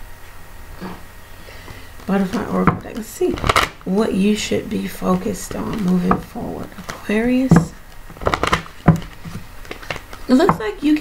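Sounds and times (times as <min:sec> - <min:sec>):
cards snapping and tapping: 0:02.7 - 0:03.8, 0:05.5 - 0:10.6.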